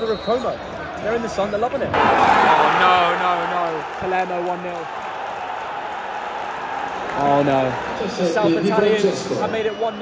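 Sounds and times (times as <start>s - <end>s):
stadium crowd celebrating: 1.9s - 10.0s.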